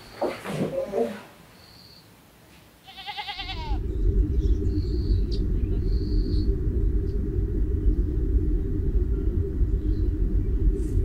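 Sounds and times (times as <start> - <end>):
sheep bleating: 2.8 - 3.8
loud low rumble: 3.5 - 11.0.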